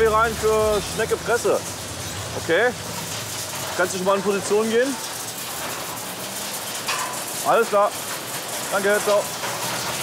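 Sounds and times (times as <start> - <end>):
recycling yard rushing hum: 0.0 - 10.0.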